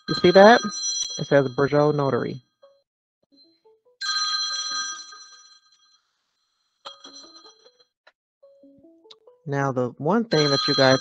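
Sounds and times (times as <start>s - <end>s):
bell-like ringtone chime: 0.0s - 2.8s, 4.0s - 6.0s, 6.6s - 7.9s, 10.3s - 11.0s.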